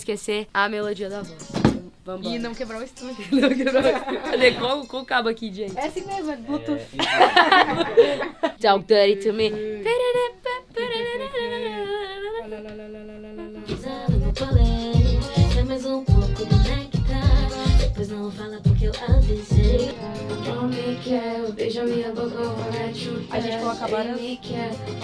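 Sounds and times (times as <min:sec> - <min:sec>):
woman singing into microphone: 0:09.2 - 0:25.0
backing beat with bass drum: 0:13.7 - 0:21.0.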